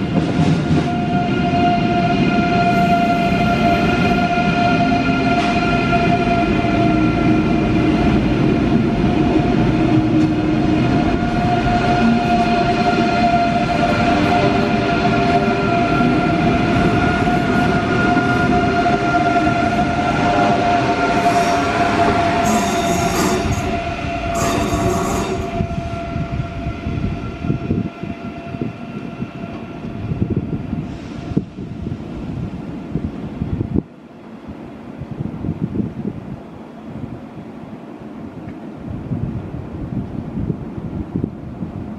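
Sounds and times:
wheels rumbling on rail: 0.0 - 41.9
train traction motor whine: 0.7 - 30.6.

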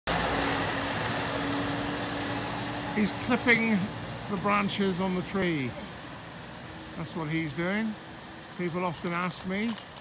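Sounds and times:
lorry diesel engine passing: 0.1 - 10.0.

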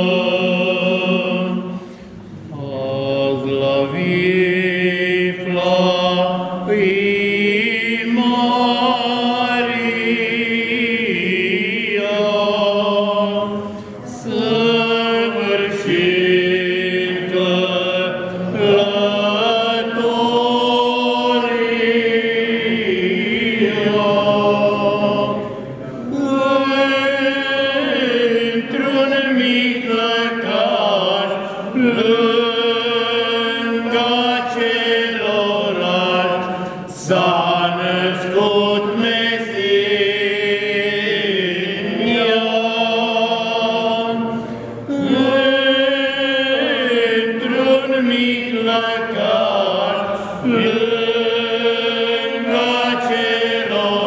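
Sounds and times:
men singing unaccompanied carol: 0.0 - 1.8, 2.5 - 54.0.

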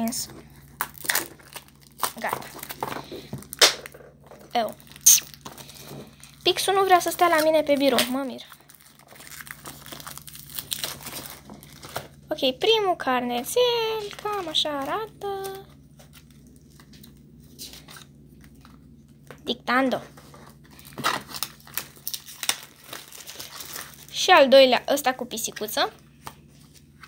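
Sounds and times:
plastic wrapping crinkling: 0.0 - 12.2, 13.5 - 19.3, 20.1 - 27.0.

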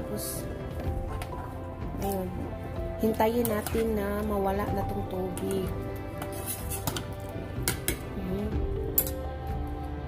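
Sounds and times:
background music: 0.0 - 10.0
metal spoon clinking against pot: 9.0 - 9.2.

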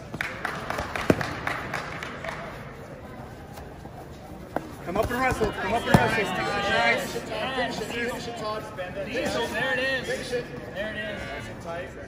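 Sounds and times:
murmur of crowd: 0.0 - 12.0
sharp slaps: 0.2 - 2.4.

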